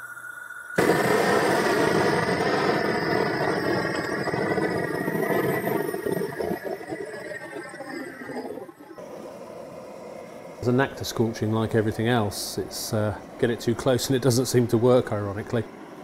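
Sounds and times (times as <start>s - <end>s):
blowtorch flame rushing: 0.8s - 9.6s.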